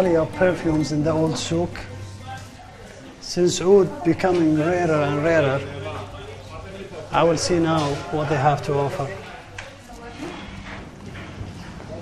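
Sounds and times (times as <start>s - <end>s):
murmur of voices: 0.0s - 12.0s
footsteps on stone pavement: 9.5s - 12.0s.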